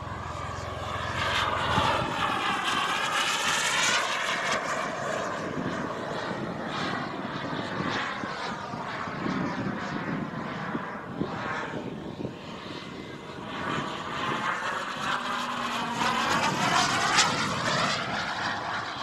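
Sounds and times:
model jet turbine flying past: 0.0 - 19.0.

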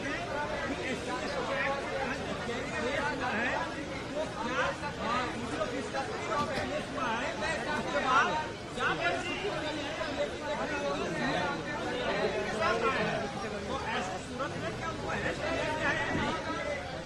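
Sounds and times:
people talking over one another: 0.0 - 17.0.

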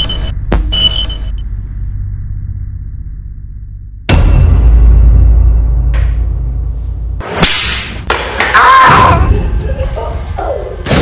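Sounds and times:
low rumble: 0.3 - 7.2
whip crack: 7.2 - 8.6.

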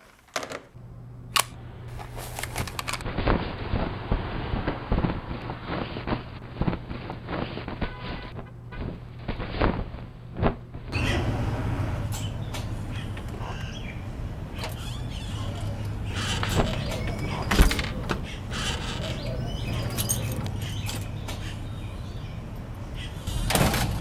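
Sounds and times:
steady low hum: 0.7 - 24.0
handling objects clicks and knocks: 1.4 - 3.1.

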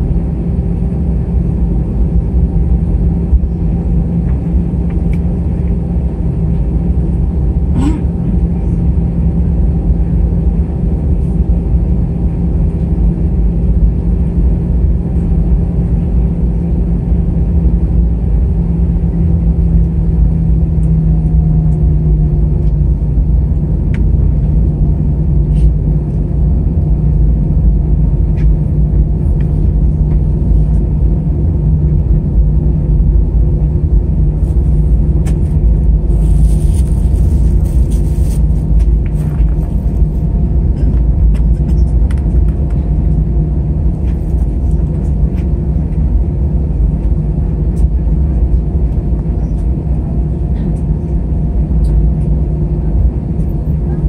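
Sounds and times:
airliner cabin engine rumble: 0.0 - 54.0.

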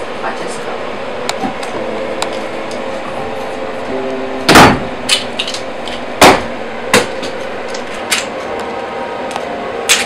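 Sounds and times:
faint steady hum: 0.0 - 10.0
sharp knocks: 4.5 - 4.9.

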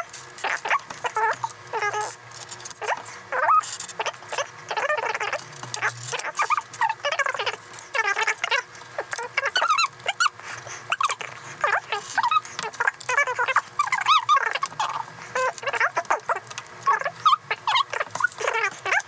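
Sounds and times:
sped-up squeaky chatter: 0.0 - 2.2, 2.8 - 19.0.

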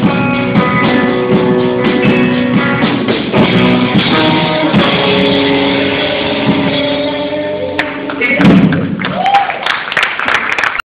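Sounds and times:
rock band closing chord: 0.0 - 8.8
scattered claps: 7.8 - 10.8.

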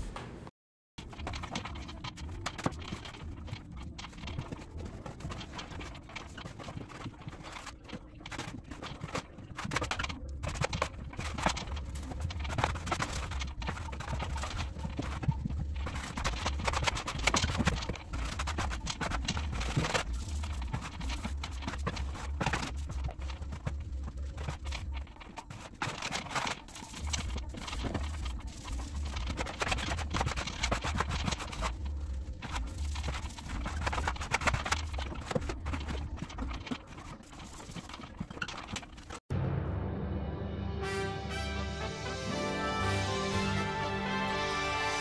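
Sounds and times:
scratchy brush strokes on wallpaper: 10.5 - 39.0.

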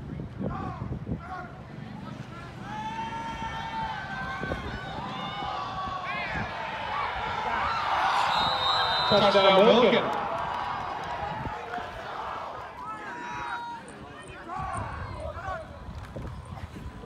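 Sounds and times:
crowd shouting and cheering: 0.5 - 17.0.

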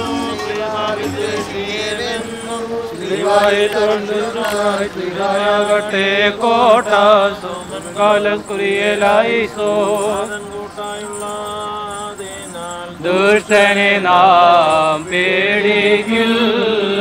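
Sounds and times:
person chanting ornamented phrases: 0.0 - 17.0.

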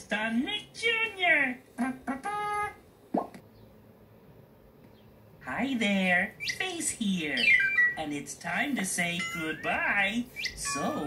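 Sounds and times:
cartoon pop with rising pitch: 3.1 - 3.4.

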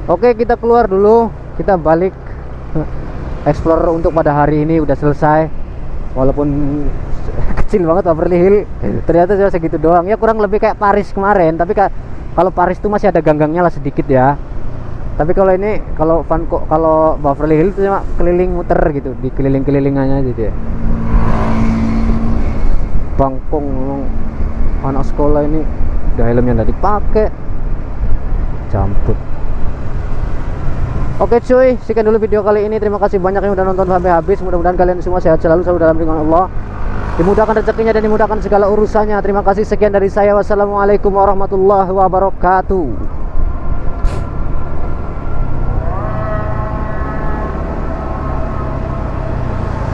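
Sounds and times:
wind noise on microphone: 43.0 - 45.4.

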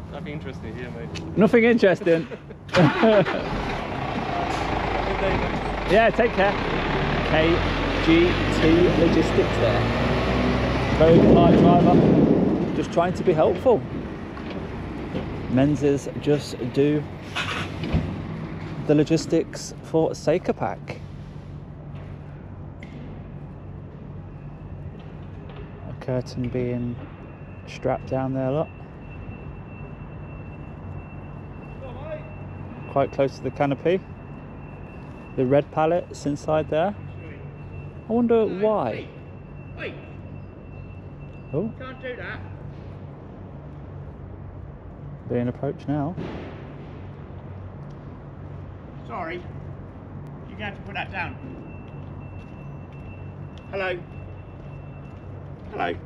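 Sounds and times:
lorry diesel engine droning: 2.7 - 11.3.

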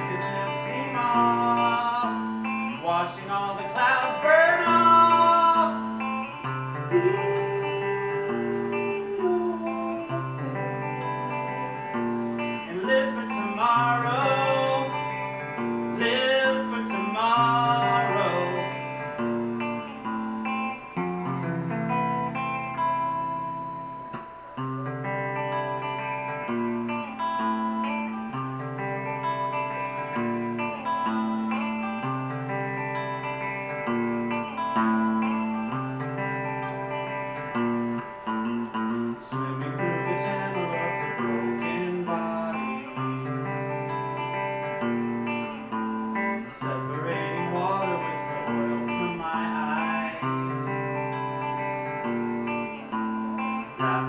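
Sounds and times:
man singing: 0.0 - 19.8, 38.7 - 44.8, 46.1 - 54.0
electric guitar picked chords: 0.0 - 54.0.

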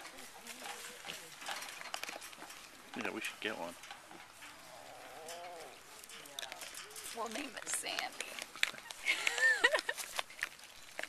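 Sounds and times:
clicks and rustles: 0.0 - 11.0.

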